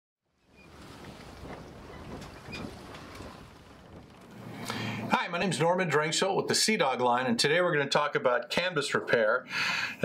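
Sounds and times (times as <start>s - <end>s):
steady rushing noise: 0.6s - 5.8s.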